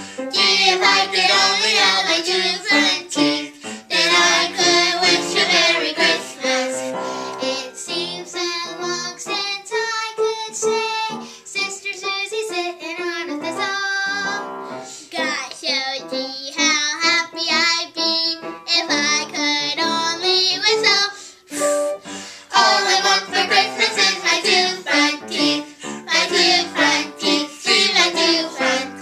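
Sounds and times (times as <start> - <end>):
family singing together: 0.0 - 29.0.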